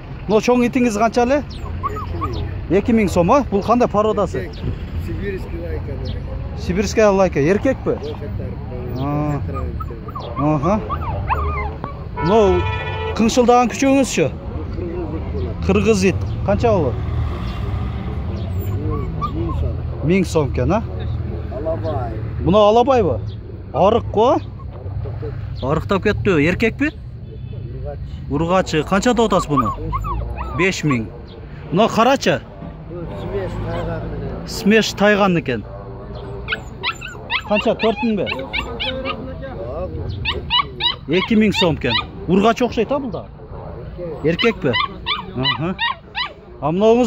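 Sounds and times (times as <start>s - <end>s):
puppies whimpering: 0.4s - 4.6s, 5.4s - 14.3s, 18.0s - 22.2s, 23.0s - 27.0s, 28.4s - 47.0s.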